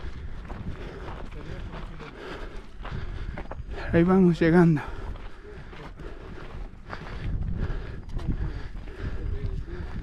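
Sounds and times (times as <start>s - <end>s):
wind rumble on microphone: 0.0s - 1.9s, 6.2s - 10.0s
footsteps crunching on gravel: 0.0s - 10.0s.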